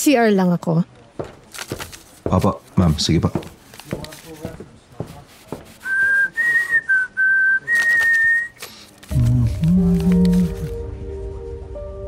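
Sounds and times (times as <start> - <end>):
person whistling a tune: 5.8 - 8.6
low background music: 9.1 - 12.0.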